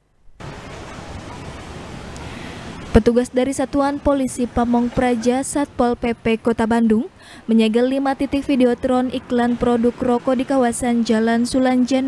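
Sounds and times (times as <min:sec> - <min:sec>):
street ambience hiss: 0:00.4 - 0:12.0.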